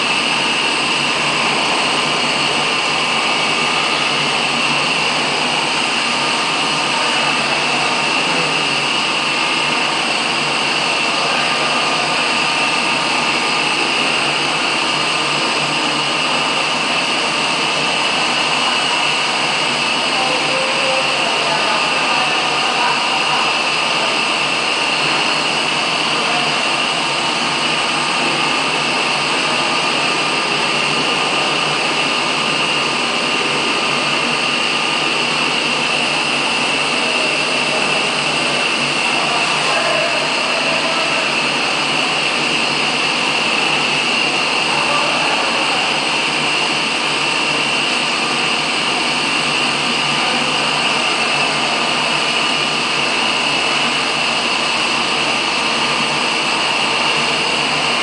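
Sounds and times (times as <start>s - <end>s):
aquarium aeration hiss: 0.0s - 58.0s.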